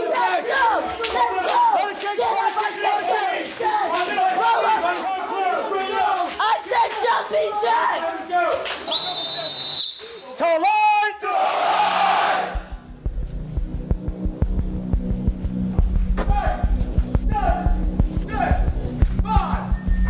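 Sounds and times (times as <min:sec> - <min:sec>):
drill instructors shouting: 0:00.0 - 0:12.6
whistle blast: 0:08.9 - 0:10.4
music with a low beat: 0:12.5 - 0:20.0.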